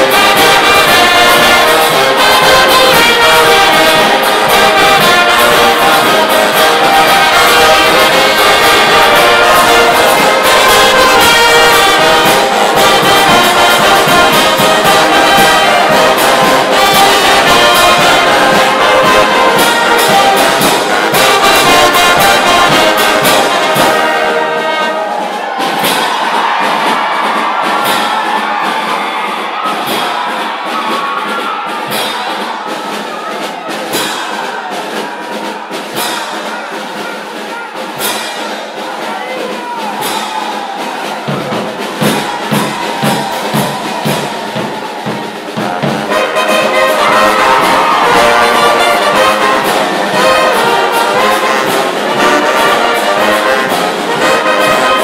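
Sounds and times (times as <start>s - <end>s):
brass band music: 0.0s - 55.0s.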